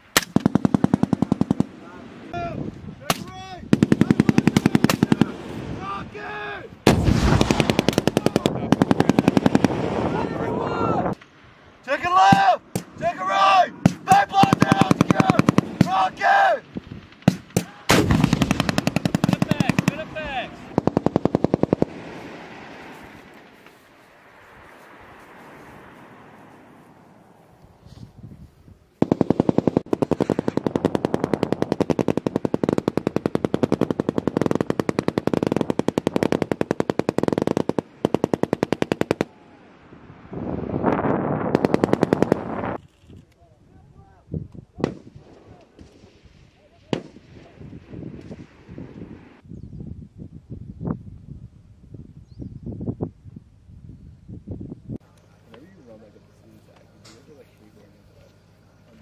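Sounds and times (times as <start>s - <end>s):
automatic machine-gun fire: 0.2s - 1.7s, 3.7s - 5.4s, 6.9s - 10.0s, 13.9s - 15.9s, 17.1s - 22.1s, 29.0s - 39.3s, 41.5s - 42.8s
single gunshots: 6.8s - 10.1s, 17.1s - 22.8s, 44.8s - 47.6s.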